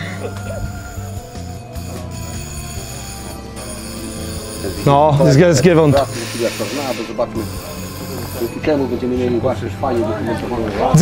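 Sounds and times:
bell ringing: 0:00.0 - 0:09.6.

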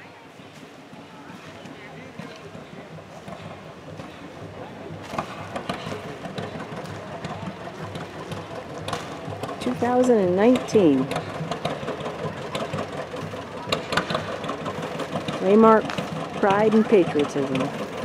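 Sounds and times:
tractor diesel engine idling: 0:00.8 - 0:18.0.

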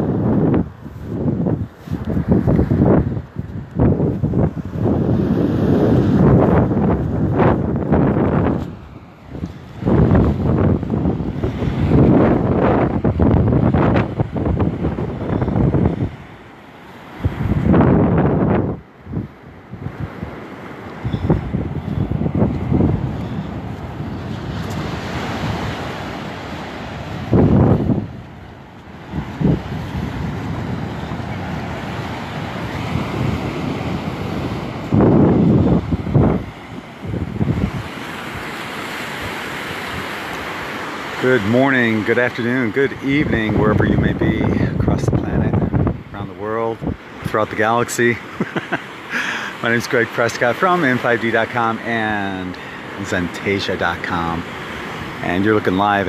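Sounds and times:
wind buffeting microphone: 0:00.0 - 0:16.5, 0:17.1 - 0:56.0
surf breaking on sandy beach: 0:00.0 - 0:56.0.

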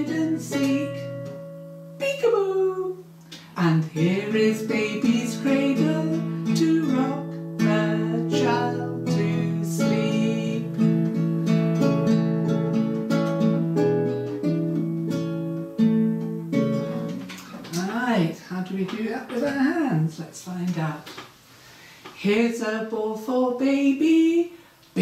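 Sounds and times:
woman singing softly: 0:00.0 - 0:01.3, 0:02.0 - 0:10.8, 0:22.2 - 0:25.0
acoustic guitar chords: 0:00.0 - 0:18.3.

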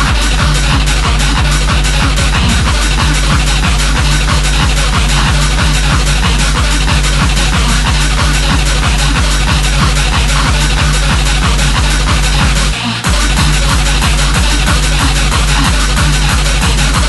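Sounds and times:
dense synth noise: 0:00.0 - 0:17.0
distorted kick drum pounding: 0:00.0 - 0:17.0.

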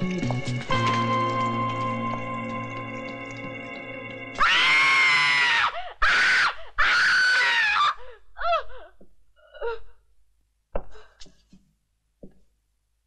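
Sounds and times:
music: 0:00.0 - 0:04.4
woman screaming: 0:04.4 - 0:08.7.

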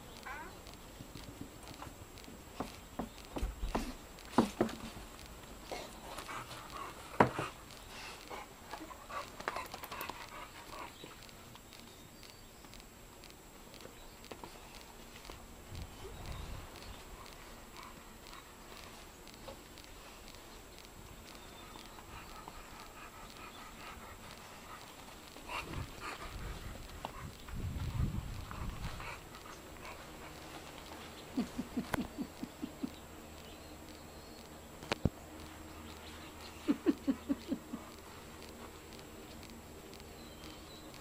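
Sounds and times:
dogs panting and sniffing: 0:00.0 - 0:41.0.

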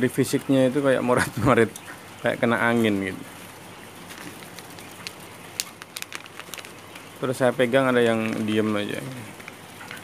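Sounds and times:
quail ticks and chirps: 0:00.4 - 0:10.0.

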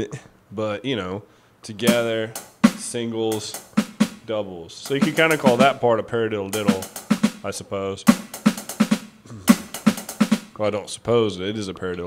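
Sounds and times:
electronic drum strokes: 0:01.8 - 0:05.8, 0:06.5 - 0:10.6.

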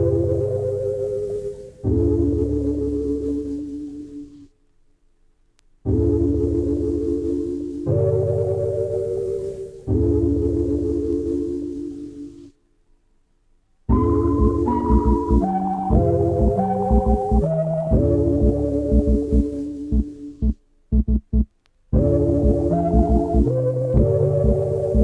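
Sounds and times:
minimal electronic music: 0:00.0 - 0:04.5, 0:05.8 - 0:12.6, 0:13.9 - 0:25.0.

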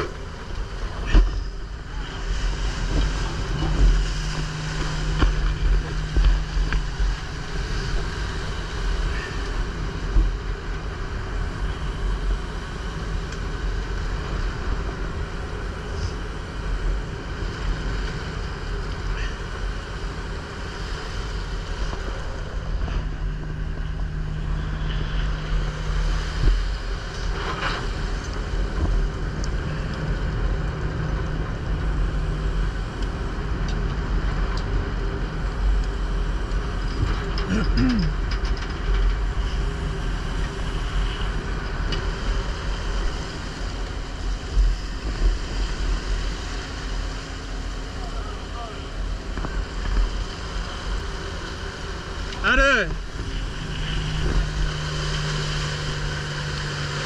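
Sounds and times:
boat engine running: 0:00.0 - 0:57.0
low hum: 0:00.0 - 0:57.0
net-hauling machinery: 0:00.0 - 0:57.0
sea wash: 0:00.0 - 0:57.0
wind buffeting microphone: 0:00.0 - 0:57.0.

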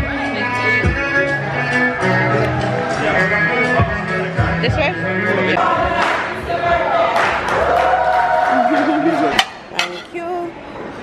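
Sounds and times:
ceramic plates clinking: 0:09.4 - 0:10.2.

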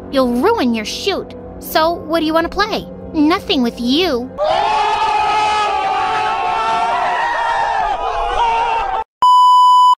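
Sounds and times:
young people shouting: 0:04.4 - 0:09.0
high test-tone beep: 0:09.2 - 0:10.0.

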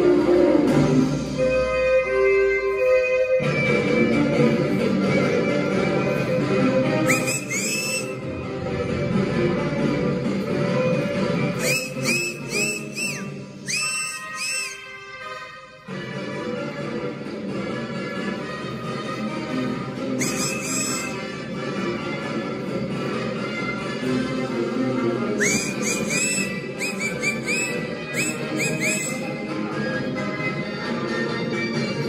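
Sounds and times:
folk dance music playing: 0:00.0 - 0:32.0
high whistles rising and falling: 0:07.1 - 0:08.2, 0:11.6 - 0:14.8, 0:25.4 - 0:29.3.

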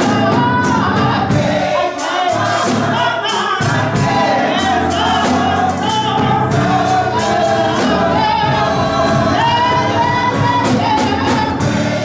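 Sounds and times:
drum kit: 0:00.0 - 0:12.0
gospel choir singing: 0:00.0 - 0:12.0
keyboard: 0:00.0 - 0:12.0.

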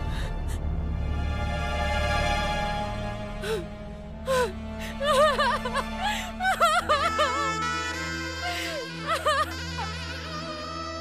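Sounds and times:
low background music drone: 0:00.0 - 0:11.0
woman crying in wavering wails: 0:04.3 - 0:11.0.

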